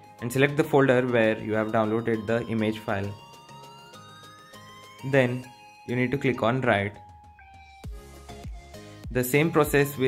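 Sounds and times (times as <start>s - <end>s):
quiet electronic music: 0.0s - 10.0s.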